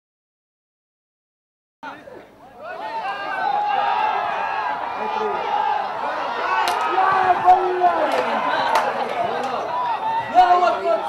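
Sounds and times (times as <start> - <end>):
men shouting: 2.5 - 11.0.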